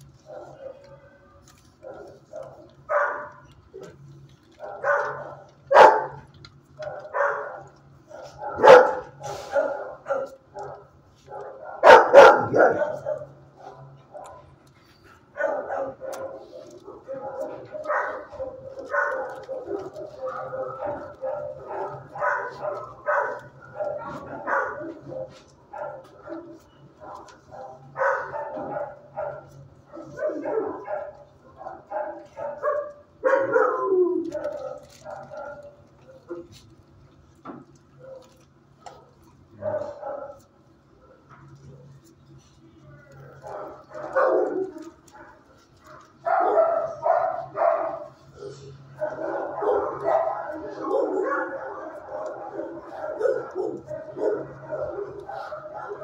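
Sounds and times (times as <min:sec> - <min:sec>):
dogs barking and yelping: 0:00.0 - 0:01.0, 0:01.6 - 0:41.8, 0:43.1 - 0:56.0.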